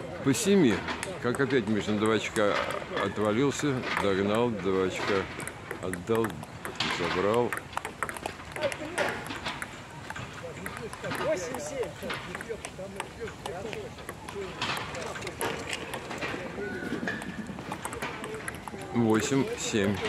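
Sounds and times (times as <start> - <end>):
people talking: 0.0 - 7.6, 8.5 - 9.3, 9.9 - 20.0
table tennis ball clicks: 1.0 - 16.4, 17.0 - 20.0.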